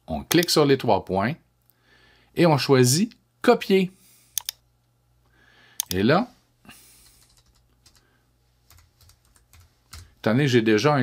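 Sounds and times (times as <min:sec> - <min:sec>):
computer keyboard keystrokes: 0:04.4 - 0:04.6, 0:05.8 - 0:06.0, 0:07.1 - 0:08.0, 0:08.7 - 0:10.1.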